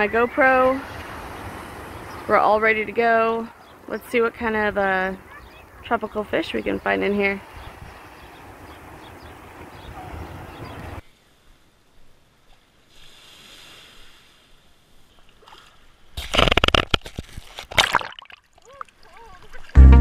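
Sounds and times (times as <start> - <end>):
wave water splashing: 0.0 - 3.7
surf noise: 0.0 - 15.1.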